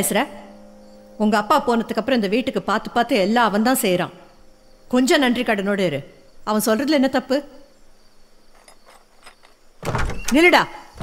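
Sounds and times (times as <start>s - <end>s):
door creak: 8.6s - 11.0s
door latch thunk: 9.8s - 11.0s.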